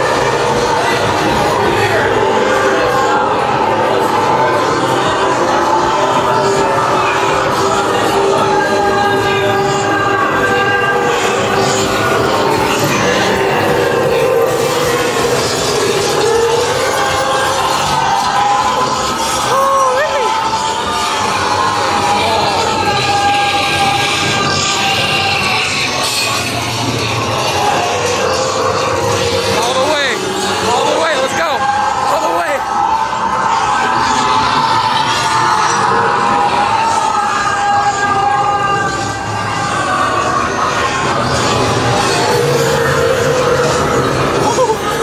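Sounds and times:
eerie sustained tones: 0:00.0 - 0:45.0.

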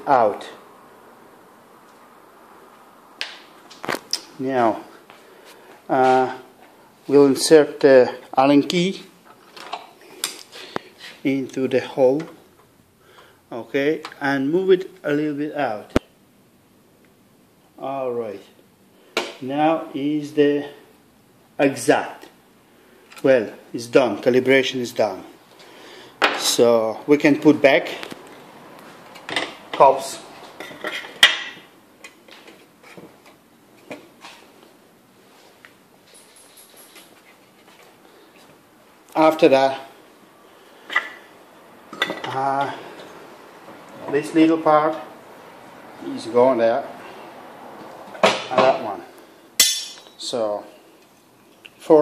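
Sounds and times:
light rustling of hand tools: 0:32.0 - 0:38.7
metallic clank with ringing: 0:49.6 - 0:50.2.

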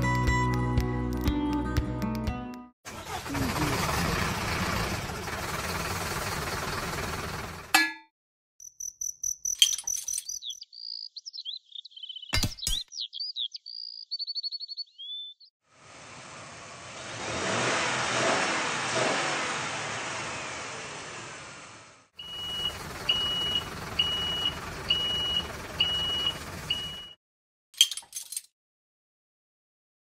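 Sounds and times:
vehicle engine: 0:02.9 - 0:07.7, 0:15.7 - 0:27.1
chirping: 0:08.6 - 0:15.5
reversing beeper: 0:22.2 - 0:27.2.

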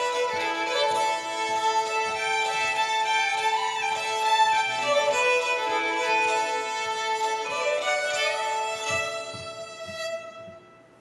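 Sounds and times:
two fiddles playing: 0:00.0 - 0:11.0.

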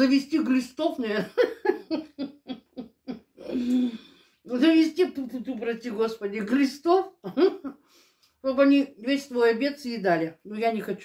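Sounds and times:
woman laughing: 0:01.1 - 0:03.9, 0:07.2 - 0:07.7.

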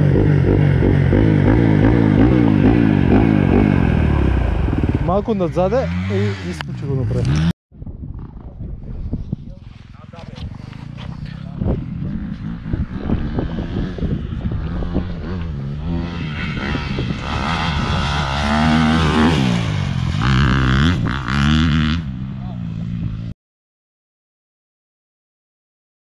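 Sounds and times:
dirt bike engine revving: 0:00.0 - 0:07.5, 0:10.8 - 0:23.3.

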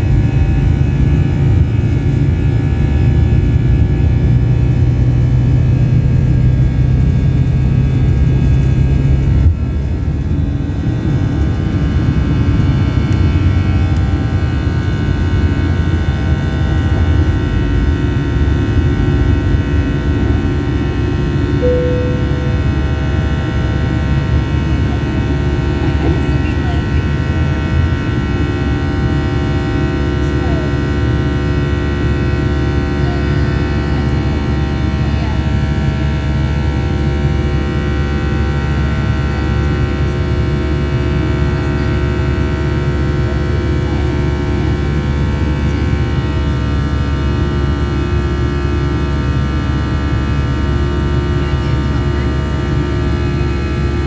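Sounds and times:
jet engines in airliner cabin: 0:00.0 - 0:54.0.

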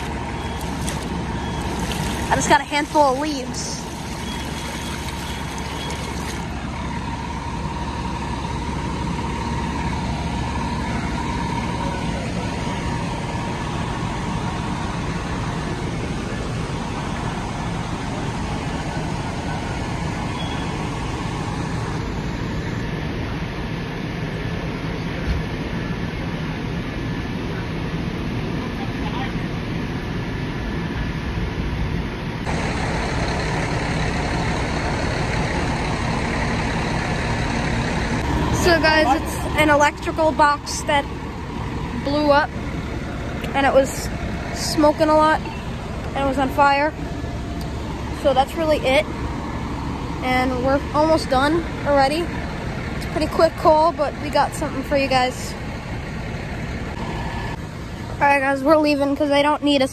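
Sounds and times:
water rushing along gutter: 0:00.0 - 0:21.9, 0:32.4 - 0:59.6
fire truck engines running: 0:00.0 - 0:59.9.

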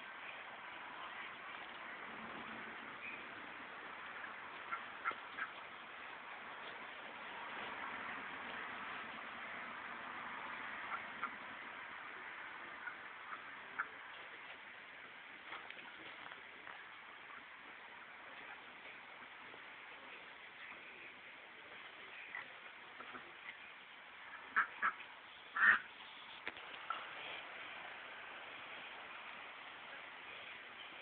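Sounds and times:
steady hiss: 0:00.0 - 0:31.0
duck quacking: 0:04.6 - 0:05.6, 0:10.9 - 0:11.4, 0:12.7 - 0:14.0, 0:24.3 - 0:26.3.

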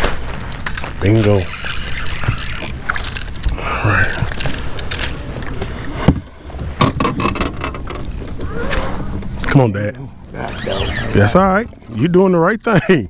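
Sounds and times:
knocks and rattles against hull: 0:04.2 - 0:08.5.

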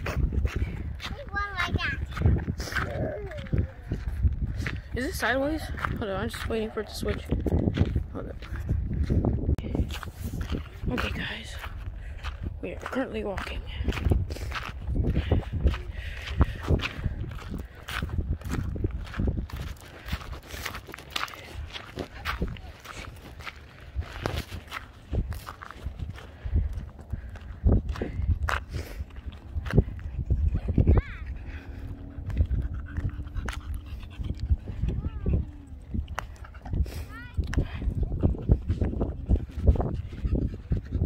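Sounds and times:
footsteps crunching on gravel: 0:00.0 - 0:37.8.

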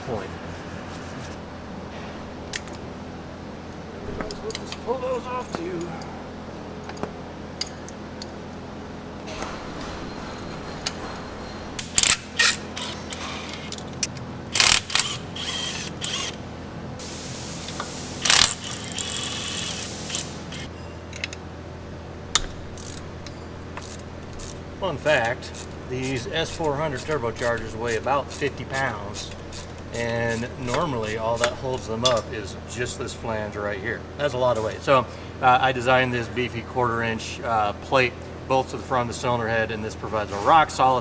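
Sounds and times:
ratchet clicking: 0:11.8 - 0:16.4, 0:18.2 - 0:21.3, 0:23.8 - 0:24.6.

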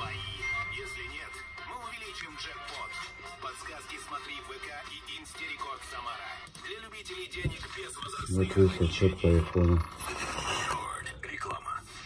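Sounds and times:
radio announcer voice: 0:06.9 - 0:10.0.

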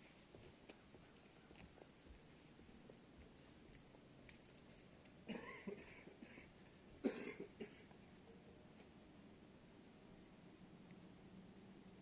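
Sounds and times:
faint background hiss: 0:00.0 - 0:12.0
person coughing: 0:05.3 - 0:07.9.

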